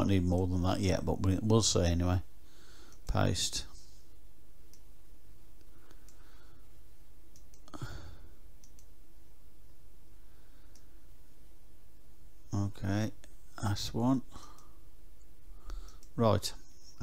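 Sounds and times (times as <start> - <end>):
computer mouse clicks: 4.7 - 4.9, 5.6 - 6.3, 7.3 - 7.8, 8.6 - 9.0, 10.6 - 10.9, 15.7 - 17.0
person sighing: 7.7 - 8.4.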